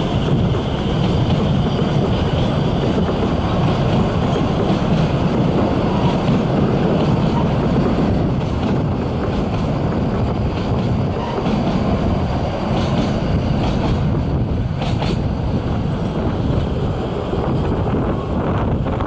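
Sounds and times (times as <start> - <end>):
train coaches rumbling on rails: 0.0 - 19.0
wind buffeting microphone: 0.0 - 19.0.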